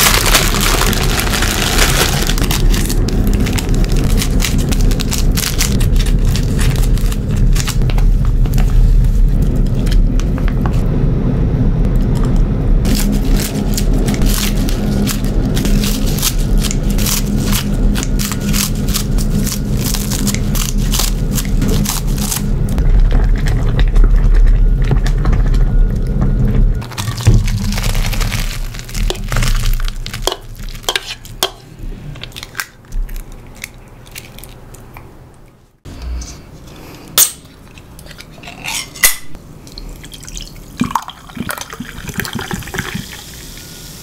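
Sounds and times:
boiling pot rumble: 0.0s - 33.2s, 38.7s - 43.7s.

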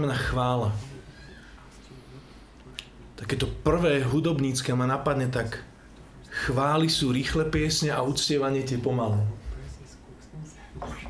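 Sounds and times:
mouth click: 2.7s - 3.0s.

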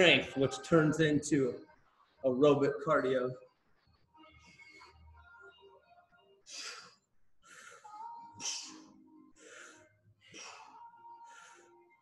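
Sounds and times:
faint music: 0.0s - 12.0s
man breathing heavily: 6.5s - 12.0s.

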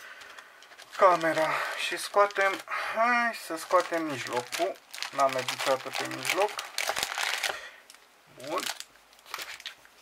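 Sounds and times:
foil packs crinkling: 0.0s - 9.8s.

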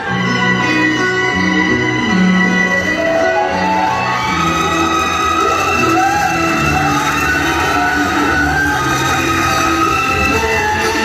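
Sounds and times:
music with sliding melody: 0.0s - 11.0s.

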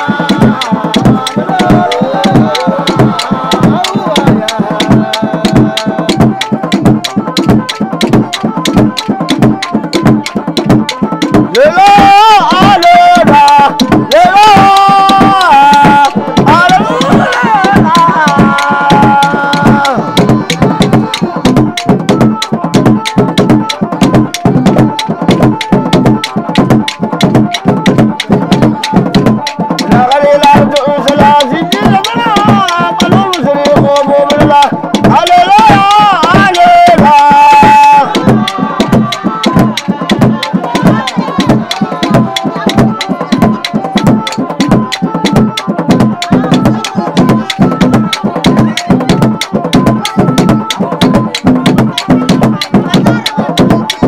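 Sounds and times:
fast hand drum beat: 0.0s - 54.0s
people singing: 0.0s - 54.0s.

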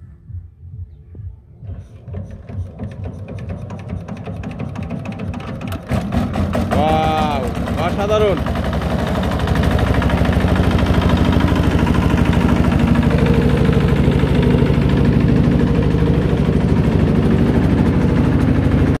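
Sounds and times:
small diesel engine chugging: 1.7s - 19.0s
thresher drum spinning: 1.7s - 19.0s.

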